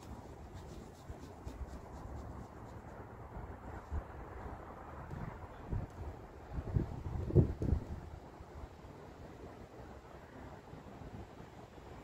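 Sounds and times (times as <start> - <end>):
quick scratchy ticks: 0.0 - 3.0
wind rumble on microphone: 0.0 - 12.0.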